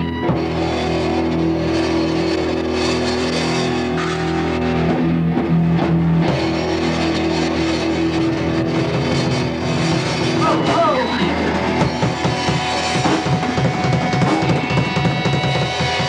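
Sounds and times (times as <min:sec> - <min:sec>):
metal band playing live: 0:00.0 - 0:16.0.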